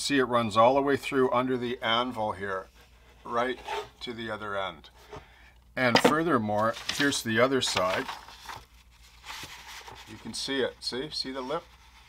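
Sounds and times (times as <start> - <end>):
paper rustling: 6.5 - 10.7.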